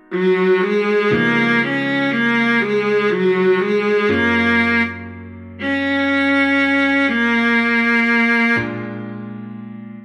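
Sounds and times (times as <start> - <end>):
viola melody: 0.0 - 10.0.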